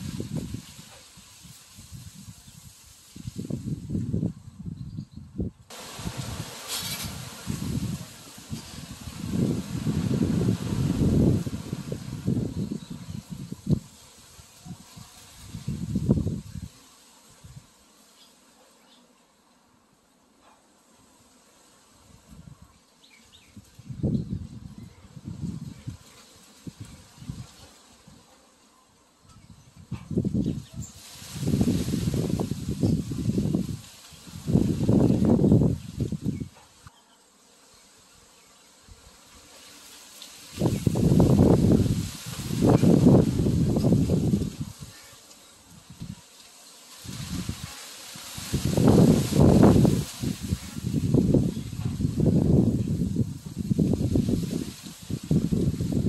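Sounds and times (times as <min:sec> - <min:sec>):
wind buffeting microphone: 0:00.0 - 0:00.9, 0:01.8 - 0:14.0, 0:14.7 - 0:16.7, 0:23.5 - 0:26.0, 0:29.4 - 0:36.5, 0:40.5 - 0:44.9, 0:47.0 - 0:56.0
rustling leaves: 0:00.0 - 0:19.5, 0:20.8 - 0:56.0.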